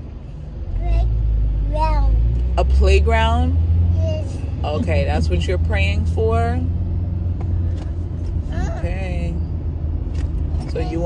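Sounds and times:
car interior road rumble: 0.0s - 11.0s.

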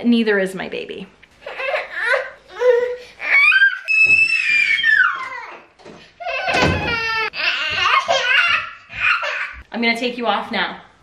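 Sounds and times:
baby crying and fussing: 1.4s - 9.6s.

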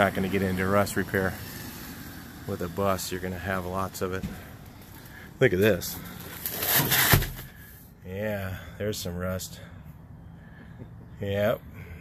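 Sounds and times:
seat cushion rustling and scraping: 6.2s - 7.5s.

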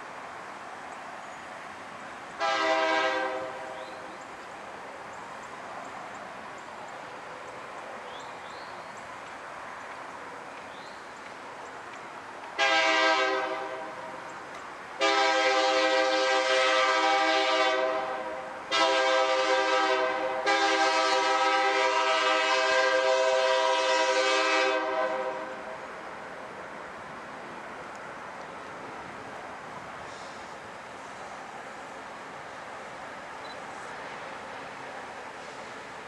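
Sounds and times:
faint approaching train: 0.0s - 36.0s
locomotive air horn blasts: 2.4s - 3.8s, 12.6s - 14.2s, 15.0s - 25.7s.

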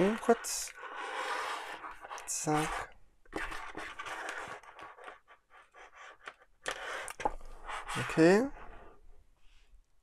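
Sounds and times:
cable connectors scraping on table: 6.6s - 8.2s.

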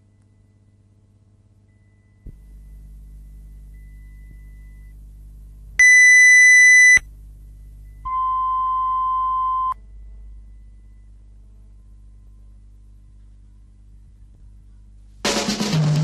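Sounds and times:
lower steady test tone: 0.0s - 15.1s
low electrical hum: 0.0s - 15.8s.

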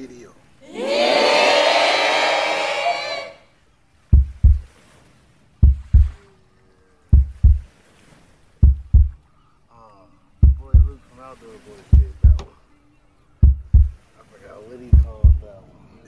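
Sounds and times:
heartbeat thumps: 4.1s - 4.7s, 5.6s - 6.2s, 7.1s - 7.7s, 8.6s - 9.2s, 10.4s - 11.0s, 11.9s - 12.5s, 13.4s - 14.0s, 14.9s - 15.5s.

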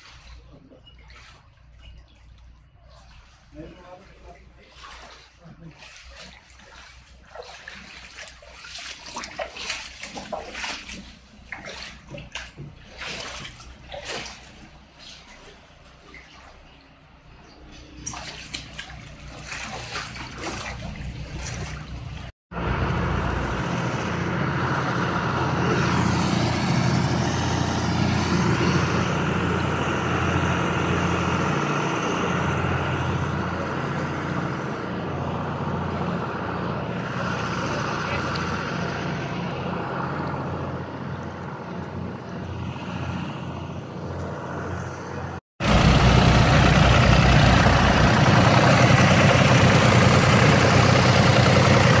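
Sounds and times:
engine running steadily: 0.0s - 52.0s
water pump engine running: 0.0s - 52.0s.

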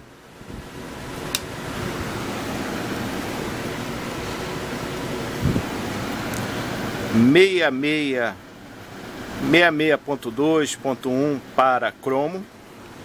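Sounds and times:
steady hiss-like noise: 0.0s - 13.0s
sharp click: 1.3s - 1.5s.

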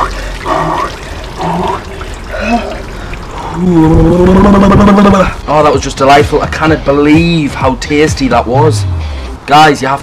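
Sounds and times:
water running and dripping: 0.0s - 8.3s
person gasping: 2.3s - 4.4s.

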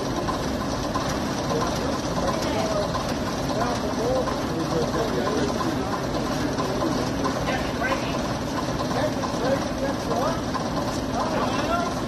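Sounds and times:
diesel bus engine idling: 0.0s - 12.0s
people chatting: 1.4s - 10.6s, 11.2s - 12.0s.

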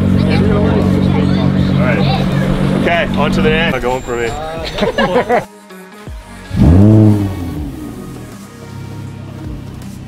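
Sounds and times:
car engine starting and revving: 0.0s - 5.3s, 6.4s - 9.9s.

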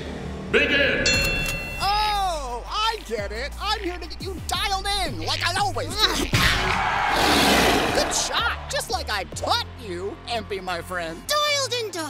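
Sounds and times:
bright bell-like chime: 1.1s - 2.3s.

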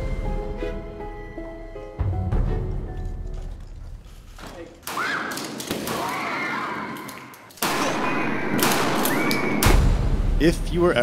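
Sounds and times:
room echo: 4.4s - 10.2s
shotgun blasts: 7.6s - 10.0s.

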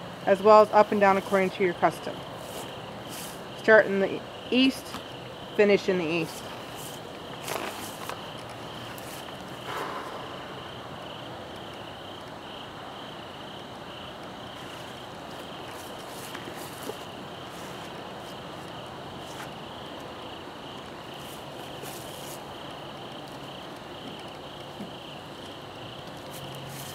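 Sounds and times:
crickets chirping: 0.0s - 26.9s.

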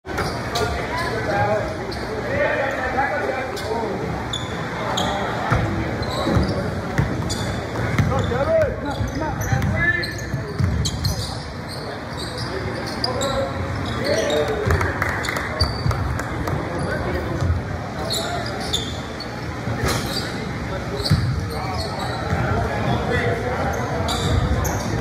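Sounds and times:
sneakers squeaking: 0.1s - 25.0s.

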